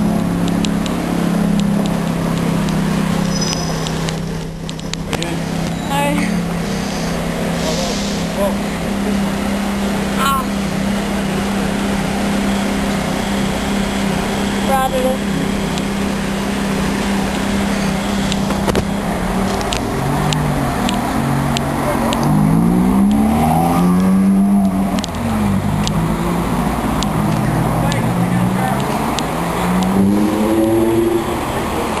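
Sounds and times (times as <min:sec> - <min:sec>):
car engine idling and revving: 0:00.0 - 0:32.0.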